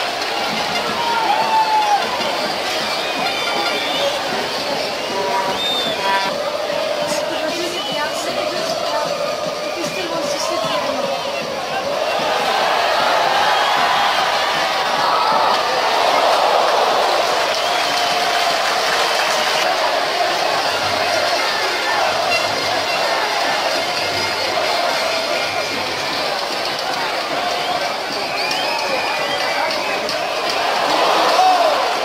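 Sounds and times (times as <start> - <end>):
stadium crowd shouting: 0.0 - 32.0.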